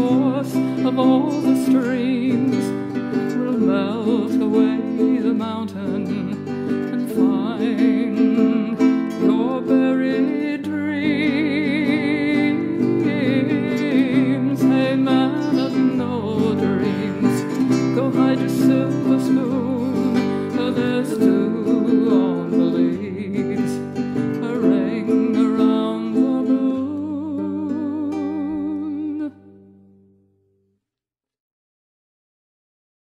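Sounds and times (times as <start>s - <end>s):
acoustic guitar playing: 0.0s - 30.6s.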